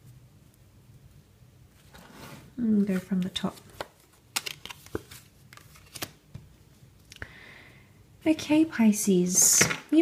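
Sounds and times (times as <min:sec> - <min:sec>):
cards sliding rustle: 0:01.7 - 0:06.2.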